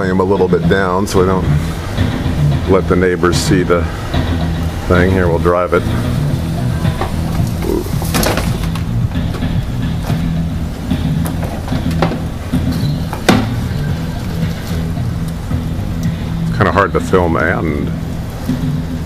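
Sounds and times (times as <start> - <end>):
steady bass line: 0.0 - 19.0.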